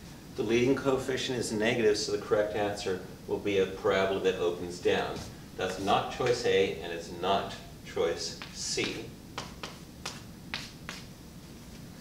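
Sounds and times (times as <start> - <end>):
chalk strokes on blackboard: 8.4 - 11.1.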